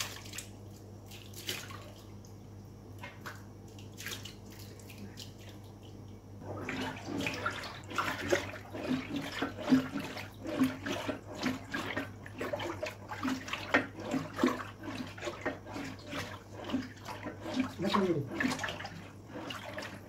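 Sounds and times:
liquid sloshing in a pot: 0:00.0 - 0:20.0.

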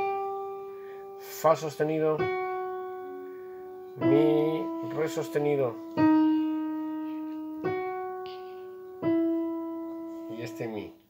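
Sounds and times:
digital piano sustained notes: 0:00.0 - 0:11.0.

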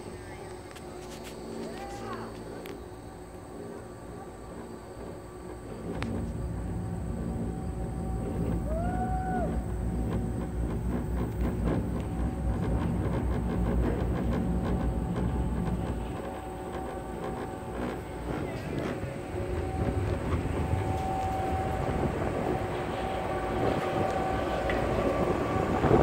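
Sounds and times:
cable lift mechanical rumble: 0:00.0 - 0:26.0
haul rope clicking and clatter: 0:09.5 - 0:26.0
whistled note: 0:18.8 - 0:26.0.

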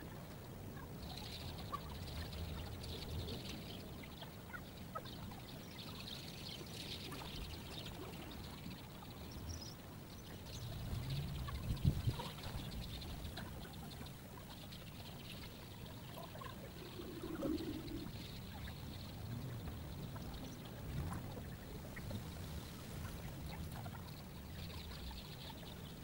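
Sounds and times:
faint high chirping: 0:00.8 - 0:22.1
steady low rumble: 0:16.4 - 0:24.9.

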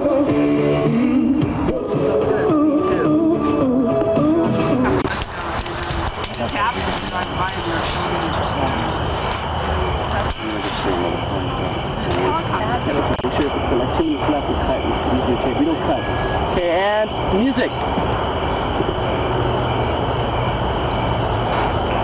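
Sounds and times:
steady low rumble: 0:00.9 - 0:22.0
people talking indistinctly: 0:05.7 - 0:18.6.

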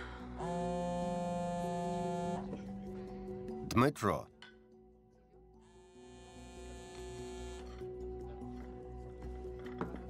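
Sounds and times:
soft background music: 0:00.0 - 0:10.0
smartphone buzzing: 0:00.4 - 0:02.6, 0:05.6 - 0:07.8.

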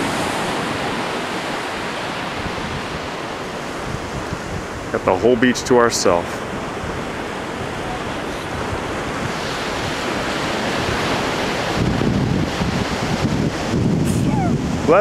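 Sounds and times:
surf washing on beach: 0:00.0 - 0:15.0
wind buffeting microphone: 0:00.0 - 0:15.0.

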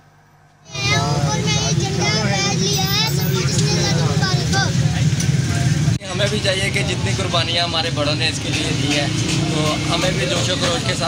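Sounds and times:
child speaking: 0:00.7 - 0:05.0.

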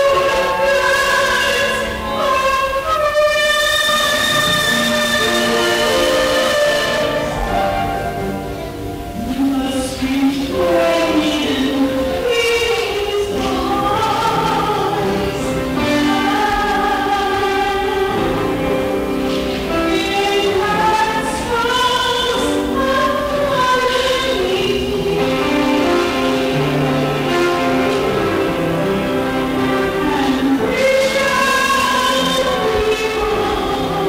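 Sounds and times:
sustained instrumental accompaniment: 0:00.0 - 0:34.0
woman singing: 0:00.0 - 0:34.0.

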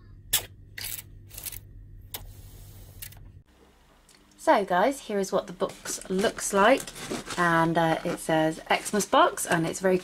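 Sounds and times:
low hum: 0:00.0 - 0:04.4.

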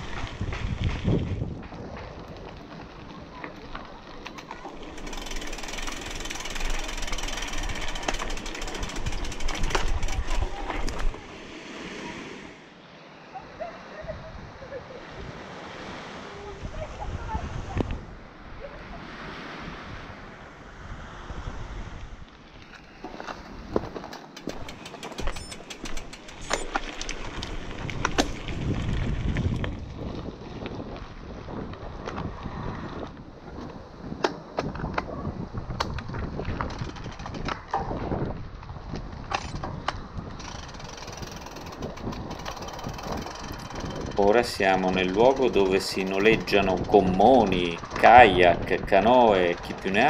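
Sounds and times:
bike clicks and rattles: 0:00.0 - 0:11.2, 0:22.6 - 0:30.8, 0:35.7 - 0:50.0
bike rolling over gravel: 0:00.0 - 0:11.3, 0:22.4 - 0:33.8, 0:36.0 - 0:50.0
wind buffeting microphone: 0:00.0 - 0:11.4, 0:14.1 - 0:22.3, 0:23.5 - 0:50.0.

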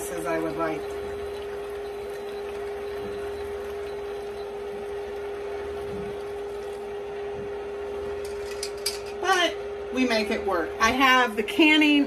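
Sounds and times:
liquid pouring through strainer: 0:00.0 - 0:07.3
steady hum: 0:00.0 - 0:12.0.

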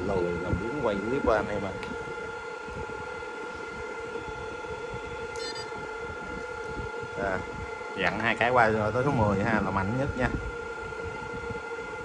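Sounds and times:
high-pitched machine whine: 0:00.0 - 0:12.0
low electrical buzz: 0:00.0 - 0:12.0.

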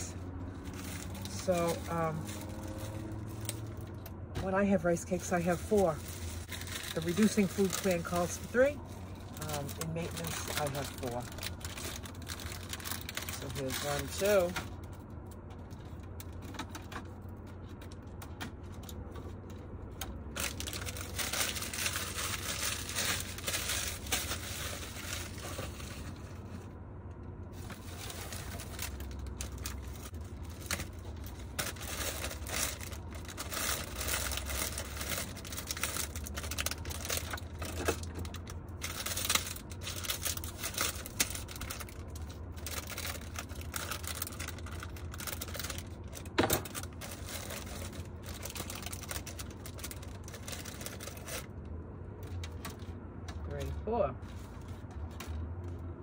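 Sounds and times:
plastic bag crinkling: 0:00.0 - 0:04.1, 0:05.0 - 0:16.8, 0:17.4 - 0:26.6, 0:27.5 - 0:51.6
low steady hum: 0:00.0 - 0:56.0.

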